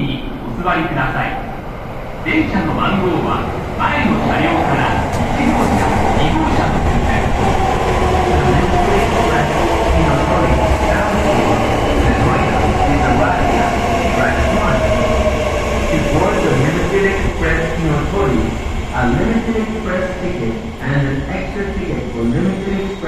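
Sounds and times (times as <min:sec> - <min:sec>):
wheels rumbling on rail: 0:03.0 - 0:23.0.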